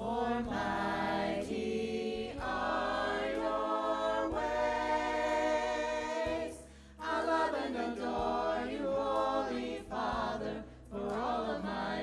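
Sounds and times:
church choir singing: 0:00.0 - 0:12.0.

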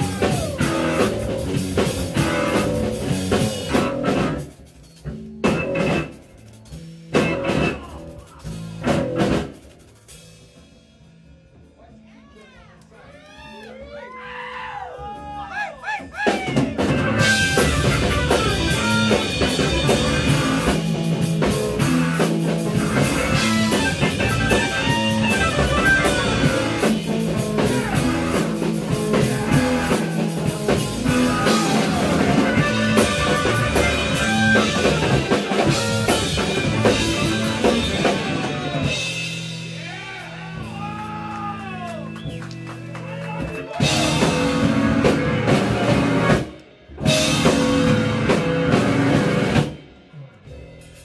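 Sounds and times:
rock band with organ playing: 0:00.0 - 0:11.1, 0:14.8 - 0:51.0.

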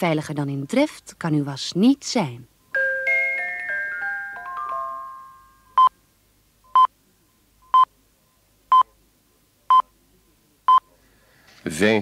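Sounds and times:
chime jingle: 0:02.8 - 0:05.8.

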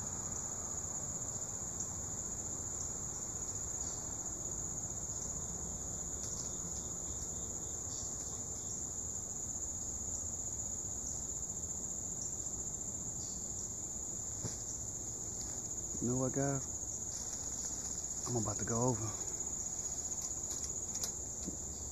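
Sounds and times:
insects buzzing: 0:00.0 - 0:21.9.

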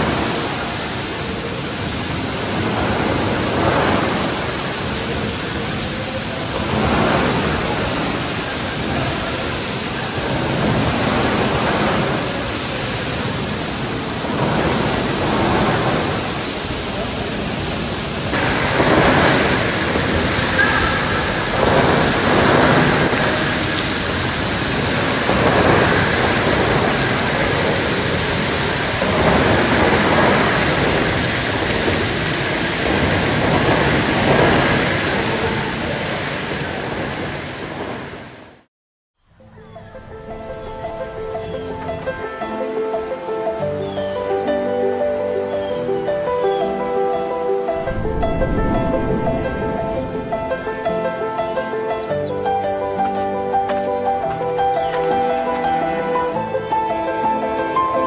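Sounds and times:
geyser water splashing: 0:00.0 - 0:38.7, 0:40.6 - 0:58.0.

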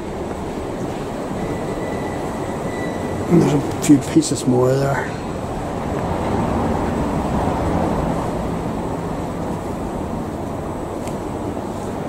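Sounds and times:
low street rumble: 0:00.0 - 0:12.0
faint thin whine: 0:00.8 - 0:05.3.

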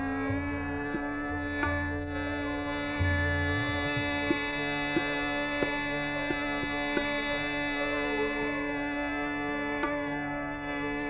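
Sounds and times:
plucked string stroke: 0:00.0 - 0:07.4.

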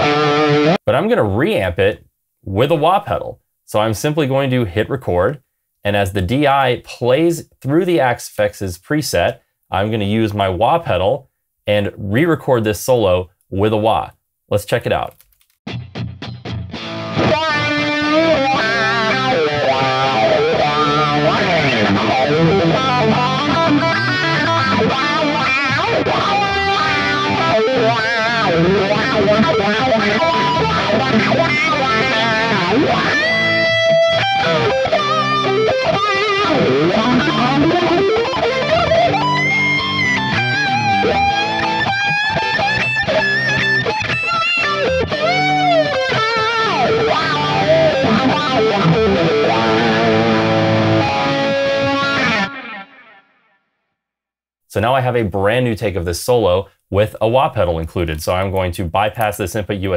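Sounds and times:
distorted electric guitar solo: 0:00.0 - 0:00.8, 0:15.7 - 0:53.4.

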